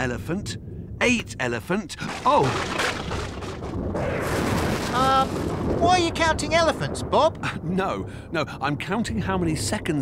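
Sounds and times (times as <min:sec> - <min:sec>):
thunder rumbling: 0:00.0 - 0:10.0.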